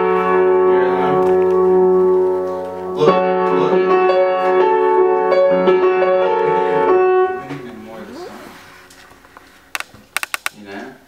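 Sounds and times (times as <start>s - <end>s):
piano chord ringing: 0.0s - 8.2s.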